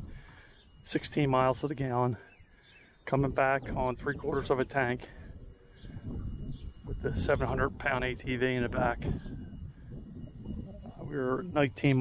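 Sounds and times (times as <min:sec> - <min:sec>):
faint bird chirps: 0:00.0 - 0:12.0.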